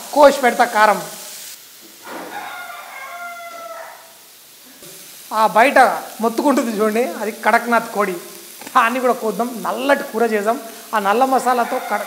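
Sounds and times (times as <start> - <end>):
rooster crowing: 2.0 - 4.2, 11.4 - 12.0.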